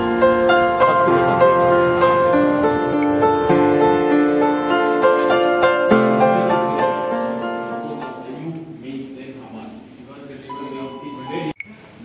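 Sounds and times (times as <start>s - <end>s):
people talking: 7.8s - 11.7s
lift arrival two-tone chime: 10.5s - 11.6s.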